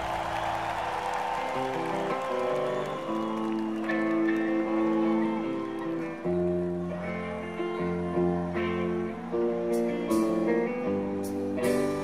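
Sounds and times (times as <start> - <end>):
held guitar chords: 1.5 - 12.0.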